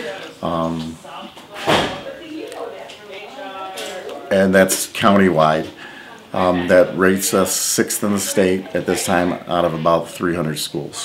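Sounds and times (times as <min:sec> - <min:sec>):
faint voices talking: 0:00.0 - 0:11.0.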